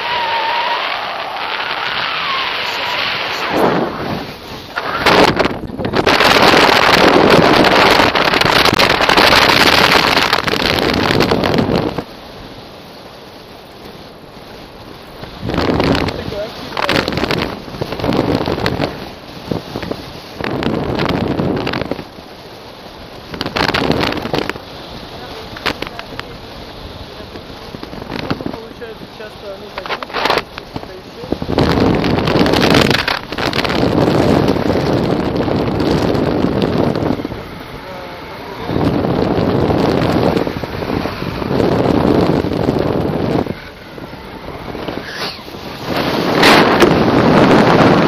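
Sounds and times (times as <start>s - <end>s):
sharp crackles: 0.0s - 48.0s
wind buffeting microphone: 0.0s - 48.0s.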